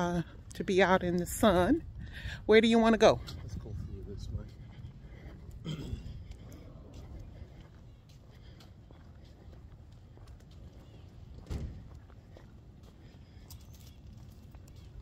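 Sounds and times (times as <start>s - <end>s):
footsteps: 3.1s - 15.0s
loud thump: 11.4s - 11.8s.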